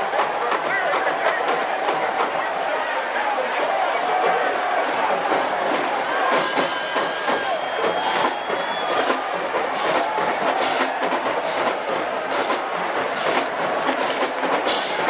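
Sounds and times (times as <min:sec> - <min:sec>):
marching band drum line: 0:00.0 - 0:15.0
stadium crowd noise: 0:00.0 - 0:15.0.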